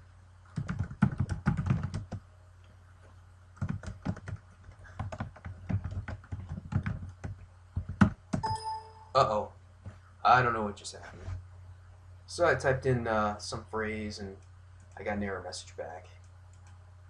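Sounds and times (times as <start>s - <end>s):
keyboard typing: 0.5s - 2.2s, 3.6s - 9.1s
short electronic beep: 8.4s - 9.2s.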